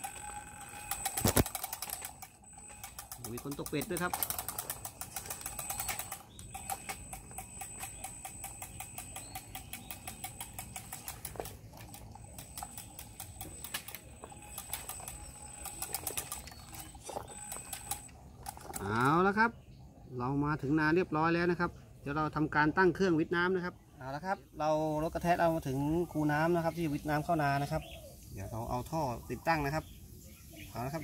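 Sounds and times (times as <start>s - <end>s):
motor whine: 0.0s - 19.0s
toy tractor mechanical ticking: 0.0s - 19.3s.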